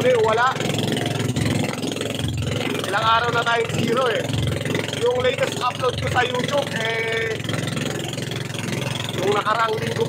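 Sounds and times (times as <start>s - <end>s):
boat engine running: 0.0s - 10.0s.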